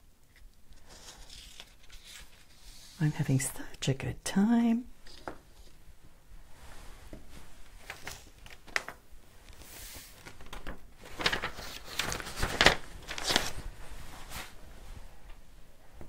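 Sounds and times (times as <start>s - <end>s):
paper rustling and scraping: 0.8s - 3.0s, 7.4s - 14.6s.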